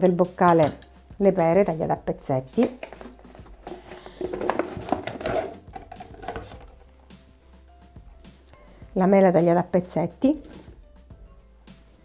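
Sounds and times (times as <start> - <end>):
quiet background music: 0.0 - 12.0
fruit pieces clattering into metal jar: 2.7 - 6.7.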